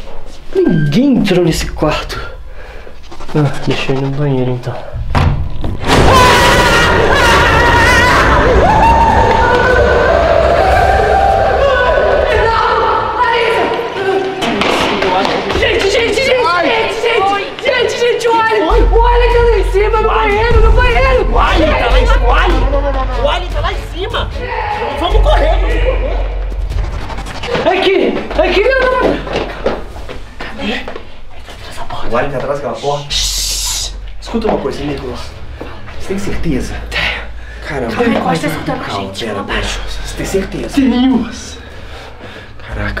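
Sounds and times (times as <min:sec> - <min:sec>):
people exclaiming: 0:05.9 - 0:14.3, 0:24.3 - 0:26.5
footsteps thudding on stairs: 0:28.3 - 0:31.1.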